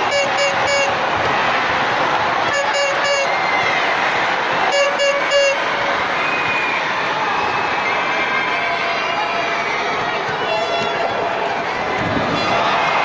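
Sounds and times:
horn short blasts: 0.0s - 1.0s, 2.4s - 3.4s, 4.7s - 5.6s
crowd noise: 0.0s - 13.0s.

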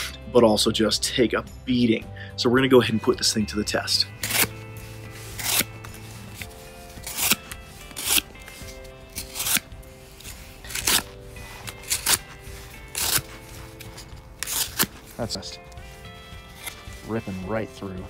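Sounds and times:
background music: 0.0s - 18.0s
knife slicing cardboard: 4.2s - 17.4s.

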